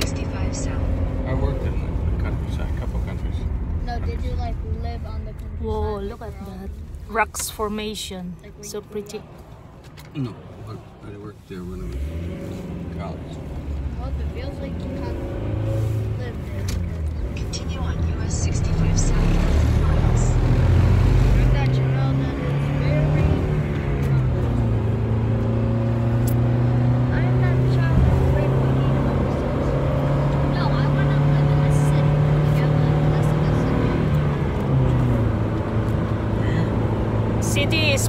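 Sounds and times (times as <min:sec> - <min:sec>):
car engine and tyre hum: 0:00.0 - 0:38.0.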